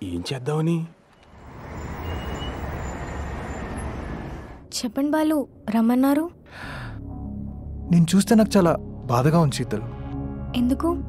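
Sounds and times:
road traffic rumble: 0.9s - 4.7s.

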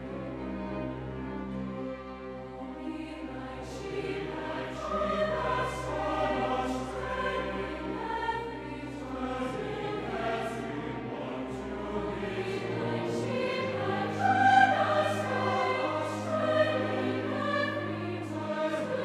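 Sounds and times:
choir singing with orchestra: 0.0s - 19.0s.

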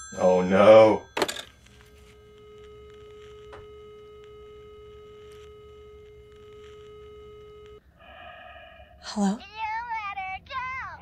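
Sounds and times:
telephone line tone: 0.0s - 7.8s.

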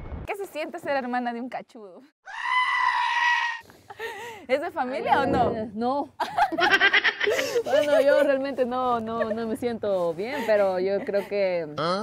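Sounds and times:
shrill comedic scream effect: 2.2s - 3.6s.

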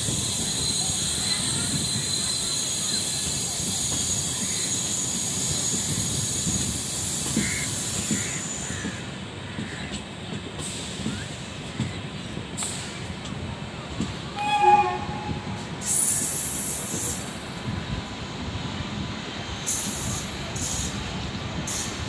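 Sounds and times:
train rumbling and clattering: 0.0s - 22.0s
locomotive horn blast: 14.3s - 15.8s
high-pitched wheel squeal: 14.4s - 16.2s.

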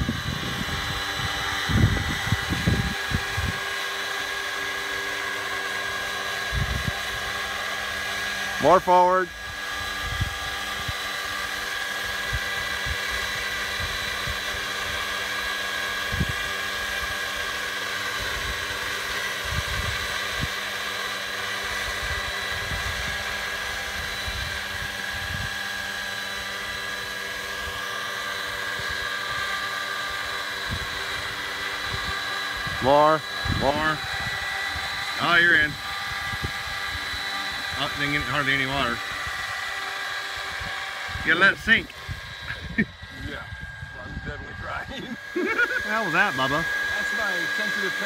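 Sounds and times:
model helicopter motor whine: 0.0s - 48.0s.

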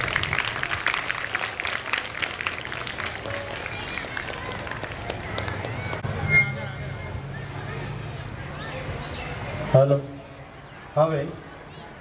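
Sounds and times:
audience clapping: 0.0s - 6.0s.

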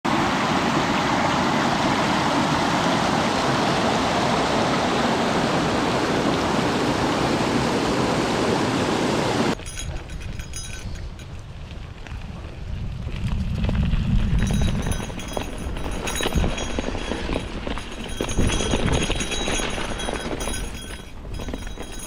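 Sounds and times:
creek rushing over rocks: 0.1s - 9.6s
bike rolling on dirt trail: 9.6s - 22.0s.

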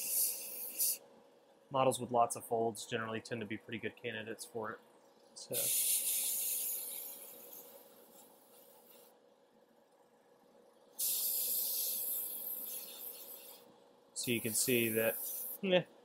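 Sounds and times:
airbrush spraying hiss: 0.0s - 1.0s, 5.5s - 9.1s, 11.0s - 15.6s
faint steady hum: 0.0s - 16.0s.

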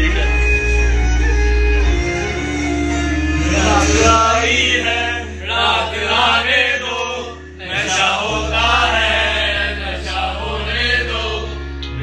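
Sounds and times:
music with low bass: 0.0s - 12.0s
men singing together: 3.4s - 11.6s.

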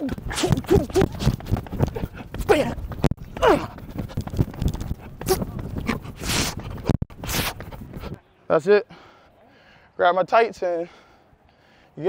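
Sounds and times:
person breathing: 8.9s - 10.0s, 10.8s - 12.0s.

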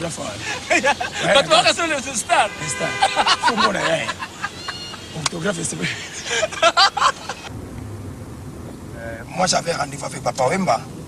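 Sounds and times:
loud voices talking: 0.0s - 7.5s
road noise: 0.0s - 11.0s.

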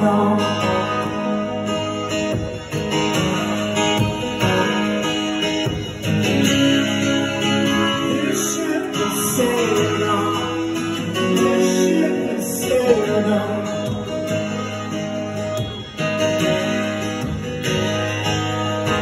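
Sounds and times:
acoustic guitar strumming: 0.0s - 19.0s
sliding guitar notes: 0.0s - 19.0s.

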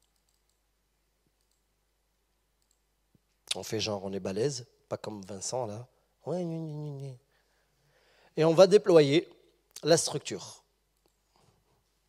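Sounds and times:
very faint clicks: 0.0s - 0.6s, 2.6s - 3.6s.

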